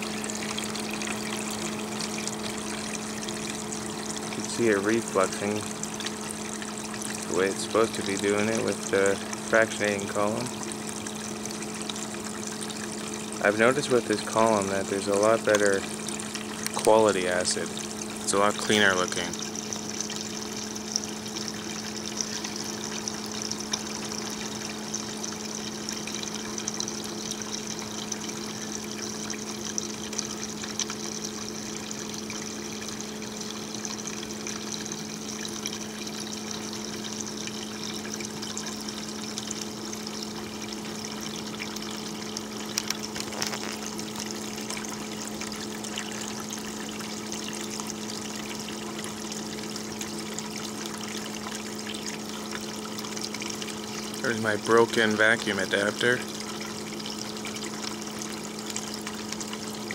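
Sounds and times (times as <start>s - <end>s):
low electric pump hum: 0.0s - 59.9s
water trickling: 0.0s - 59.9s.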